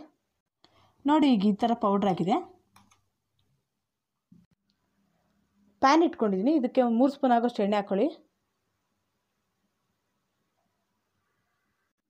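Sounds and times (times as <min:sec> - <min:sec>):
woman speaking: 0:01.0 - 0:02.6, 0:05.8 - 0:08.3.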